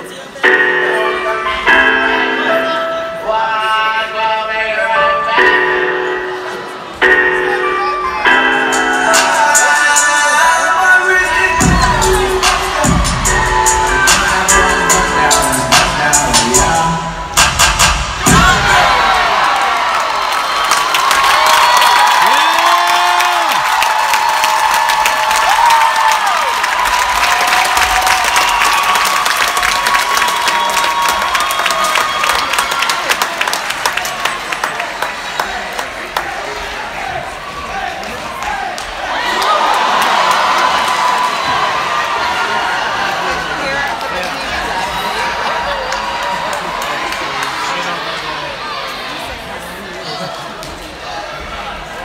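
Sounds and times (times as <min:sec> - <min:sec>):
audience cheering and screaming: 0:18.2 - 0:34.4, 0:37.1 - 0:43.8
audience clapping: 0:19.0 - 0:36.8, 0:38.0 - 0:48.3.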